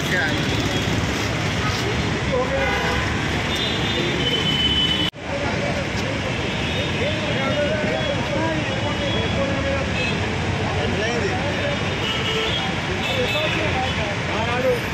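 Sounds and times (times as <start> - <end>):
people talking: 0.0 - 3.0, 5.2 - 14.9
roadside traffic: 0.0 - 14.9.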